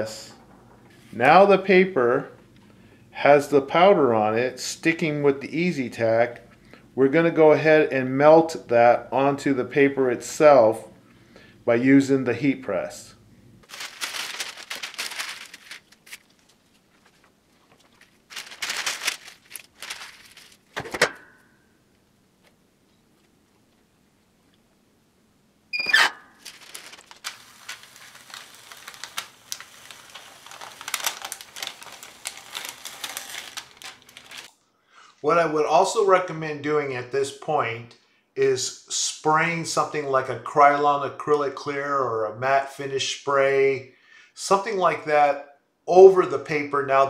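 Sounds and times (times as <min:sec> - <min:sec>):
paper rustling and crinkling: 0:13.6 - 0:20.9, 0:26.3 - 0:34.5.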